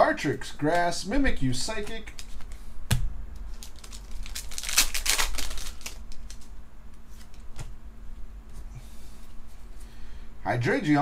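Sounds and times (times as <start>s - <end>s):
cards clicking and rustling: 1.8s - 2.6s, 3.4s - 6.5s.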